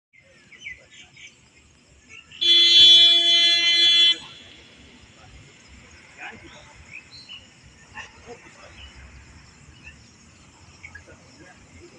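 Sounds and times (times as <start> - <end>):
loud steady horn tone: 2.4 - 5.2.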